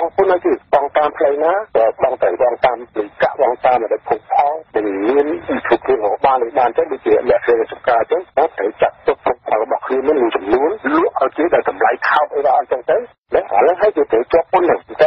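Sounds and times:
radio news voice: 0:00.0 - 0:15.0.

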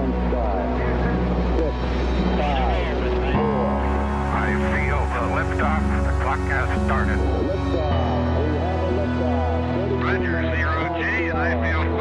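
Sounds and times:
crackly radio voices: 0:04.3 - 0:07.7, 0:10.0 - 0:12.0.

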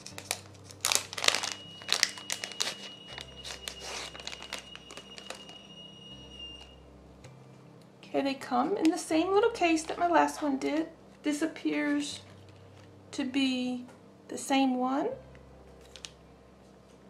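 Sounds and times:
plastic bag crinkling: 0:00.0 - 0:05.7.

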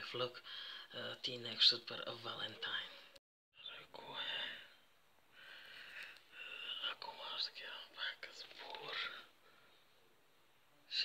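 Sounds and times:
person whispering softly: 0:02.2 - 0:04.8, 0:06.0 - 0:10.0, 0:10.8 - 0:11.0.

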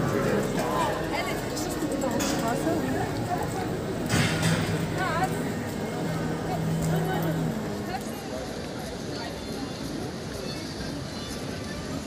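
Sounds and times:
passersby talking: 0:00.0 - 0:12.0.

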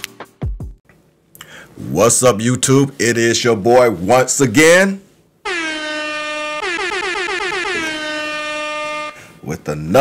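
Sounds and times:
air horn blast: 0:05.4 - 0:09.4
higher horn tone: 0:05.4 - 0:09.4.

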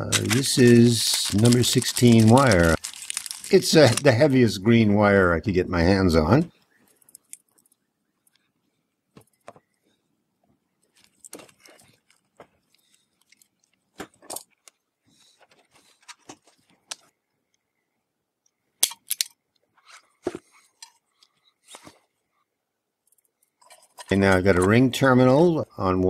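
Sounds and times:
hand tools and wire rustling: 0:00.0 - 0:04.2, 0:10.8 - 0:17.1, 0:23.1 - 0:24.9
tools clicking and clinking: 0:18.8 - 0:19.4.

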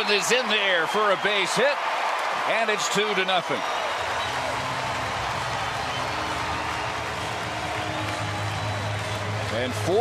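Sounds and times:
crowd cheering and clapping: 0:00.0 - 0:10.0.

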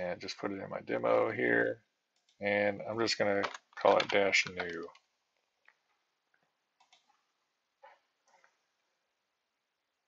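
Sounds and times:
computer mouse clicks: 0:02.1 - 0:02.4, 0:06.4 - 0:07.2.

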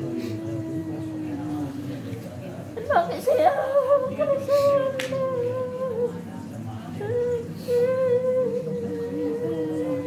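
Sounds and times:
woman singing a wailing lament: 0:07.0 - 0:10.0.

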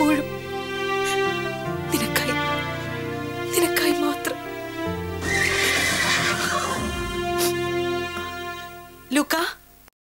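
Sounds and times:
background music with sustained tones: 0:00.0 - 0:09.9
rough cry falling in pitch: 0:05.2 - 0:07.6.

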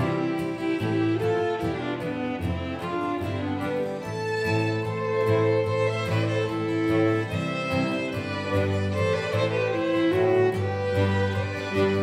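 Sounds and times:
acoustic guitar: 0:00.0 - 0:12.0
string quartet playing fiddle tune: 0:00.0 - 0:12.0.

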